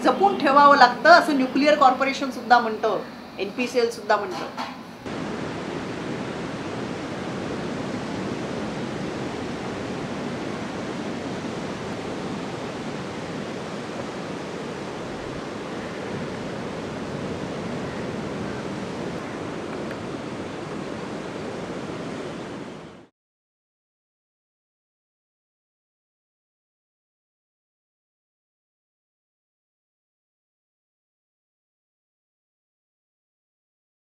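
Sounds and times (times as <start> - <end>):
waves breaking on beach: 5.0 - 23.1.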